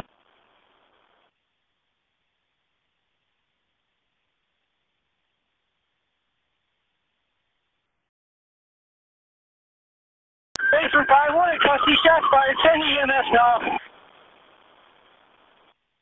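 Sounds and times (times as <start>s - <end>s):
radio static hiss: 0.0s - 1.4s, 10.6s - 16.0s
voice over radio: 10.6s - 13.9s.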